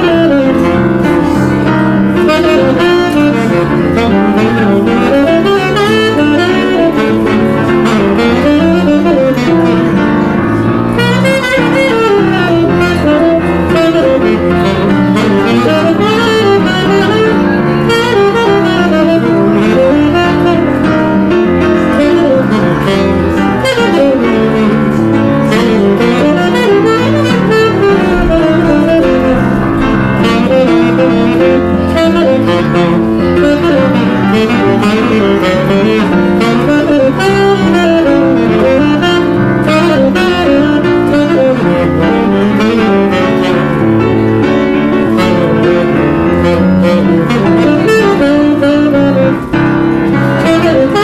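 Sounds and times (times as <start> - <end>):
tenor saxophone jazz line: 0.0 - 51.0
upright piano accompaniment: 0.0 - 51.0.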